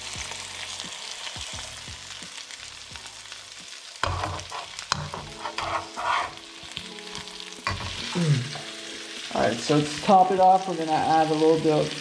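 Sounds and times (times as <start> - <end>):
fish sizzling in a frying pan: 0.0 - 12.0
metal spatula scraping a pan: 4.0 - 6.7, 7.6 - 8.6.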